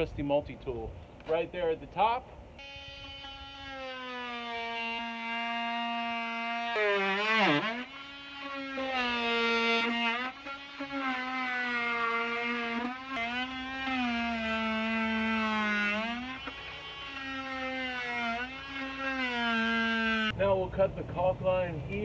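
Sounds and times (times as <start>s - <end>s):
multi-tool cutting wood: 2.6s - 20.4s.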